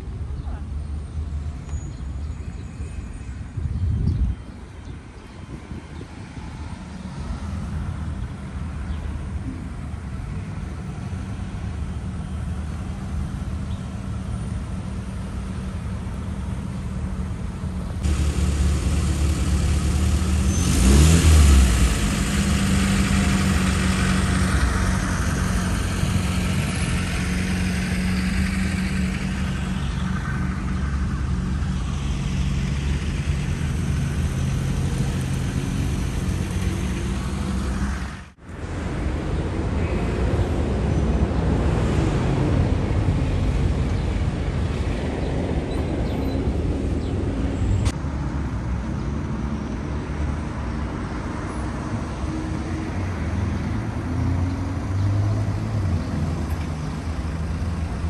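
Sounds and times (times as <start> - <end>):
road traffic drone: 0.0 - 58.0
vehicle accelerating past: 18.0 - 39.8.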